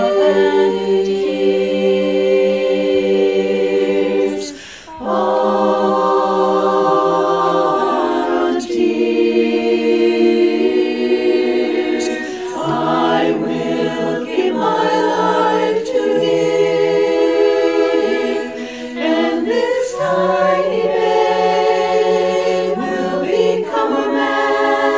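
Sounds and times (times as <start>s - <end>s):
women's choir singing a cappella: 0.0s - 24.9s.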